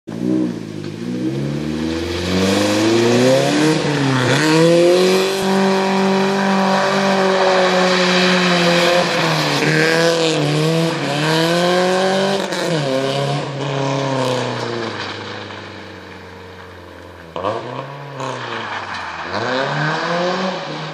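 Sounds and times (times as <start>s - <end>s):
car engine revving hard: 0.1s - 14.9s, 19.2s - 20.9s
tyres scrabbling on gravel: 2.3s - 20.4s.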